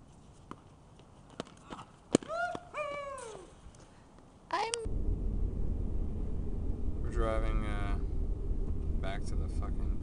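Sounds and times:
road rumble inside moving car: 4.9s - 10.0s.

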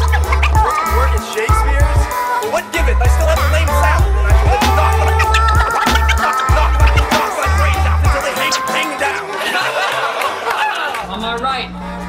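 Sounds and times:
heavy repeating bass line: 0.0s - 2.2s, 2.8s - 8.8s
turntable scratching: 0.0s - 9.3s
hip hop beat: 0.0s - 10.1s.

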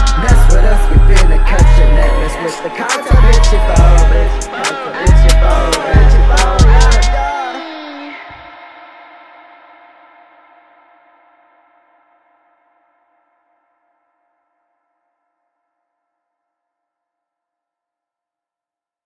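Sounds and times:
hip-hop beat sustained note: 0.0s - 7.8s.

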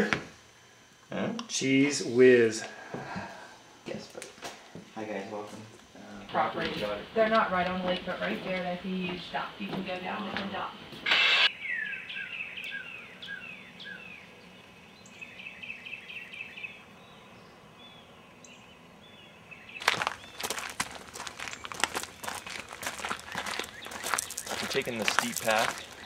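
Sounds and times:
short burst of noise: 11.0s - 11.5s
songbird whistled notes: 11.5s - 14.2s
bird chirps: 11.5s - 20.5s, 21.5s - 26.0s
footsteps on dry leaves and gravel: 19.7s - 26.0s.

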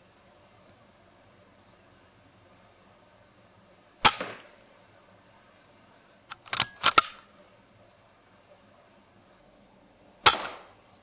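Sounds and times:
air rifle shot crack: 4.0s - 4.6s, 10.2s - 10.8s.

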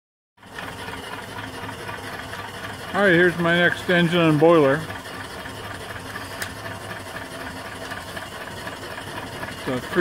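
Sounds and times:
steam engine running: 0.4s - 10.0s.

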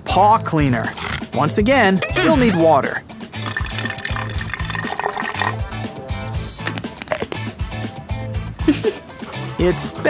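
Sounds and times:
water pouring into plastic cup: 3.4s - 5.6s
background music with bass line: 5.6s - 10.0s.

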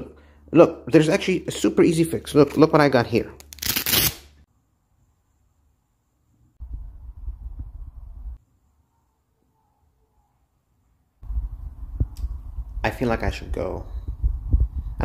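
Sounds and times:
low rumble: 6.6s - 8.4s, 11.2s - 15.0s.

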